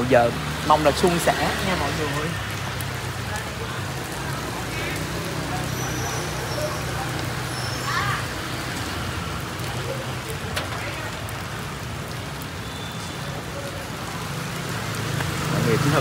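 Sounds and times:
heavy rain on street: 0.0 - 16.0.

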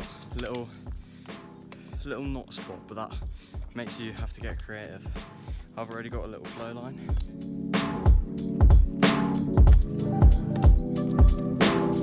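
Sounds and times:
person speaking: 0.0 - 0.8
background music with steady beat: 0.0 - 12.0.

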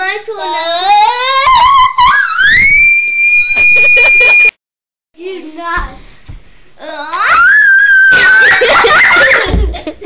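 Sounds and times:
girl's high-pitched scream: 0.8 - 4.5, 7.0 - 9.5.

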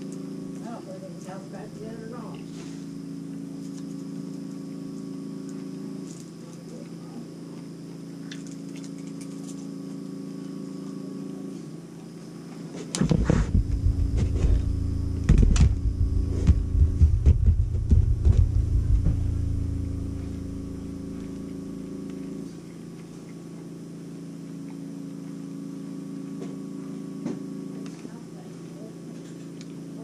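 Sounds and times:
low electrical hum: 0.0 - 30.0
knocks and rumbling on tabletop: 13.0 - 19.4.

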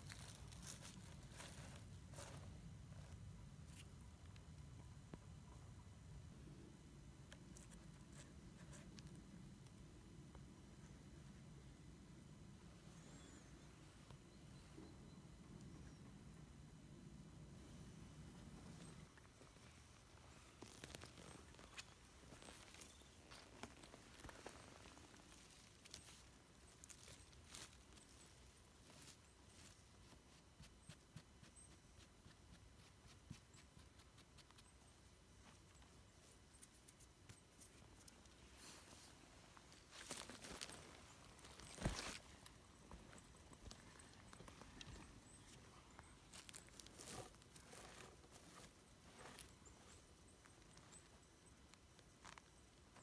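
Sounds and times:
footstep on forest litter: 38.6 - 45.5.

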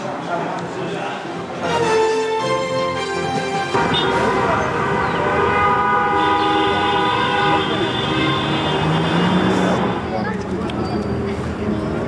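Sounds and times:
traffic noise: 0.0 - 12.0
car horns blasting: 3.7 - 10.1
higher-pitched car horn: 3.7 - 10.1.

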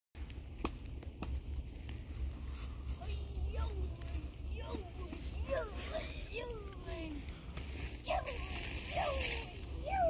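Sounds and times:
steady low rumble: 0.2 - 10.0
children's wordless calls: 3.0 - 7.4, 8.0 - 10.0.

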